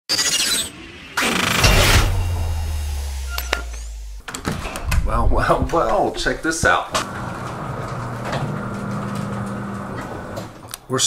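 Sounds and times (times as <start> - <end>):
shimmering sweep: 0.7 - 4.2
loud glass-like crash: 1.2 - 4.2
low rumbling boom: 1.7 - 6.7.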